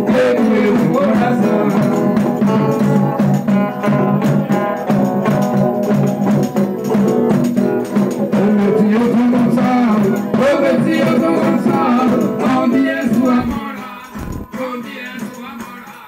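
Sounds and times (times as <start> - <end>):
strummed banjos: 0.0 - 16.0
tambourine: 0.5 - 9.0.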